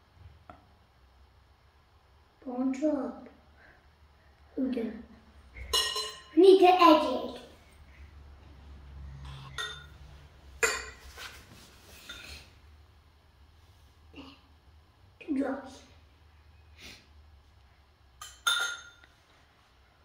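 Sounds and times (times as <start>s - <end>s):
child's voice: 2.4s - 3.4s, 4.6s - 5.2s, 6.4s - 7.6s, 15.2s - 16.0s
metal spoon clinking glass bowl: 5.6s - 6.4s, 9.4s - 10.0s, 18.2s - 19.1s.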